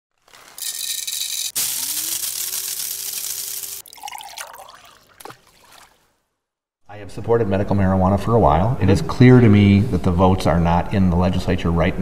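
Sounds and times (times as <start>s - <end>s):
liquid pouring into a cup: 1.5s - 6.0s
liquid dribbling: 1.6s - 6.2s.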